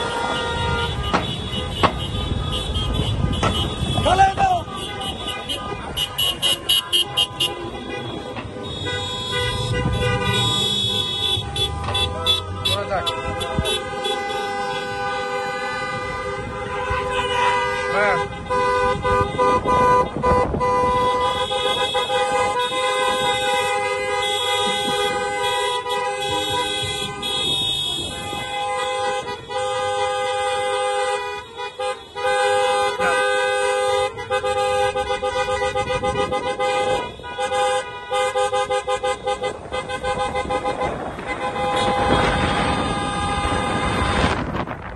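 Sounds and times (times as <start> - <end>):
car horns honking: 0.0 - 44.7.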